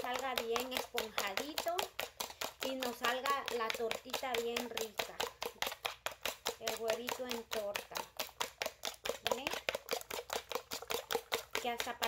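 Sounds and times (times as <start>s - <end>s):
fork beating eggs in bowl: 0.0s - 12.0s.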